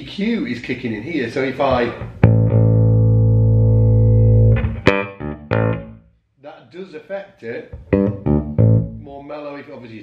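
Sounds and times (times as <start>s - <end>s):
electric bass plucked notes: 1.8s - 6.1s, 7.8s - 9.2s.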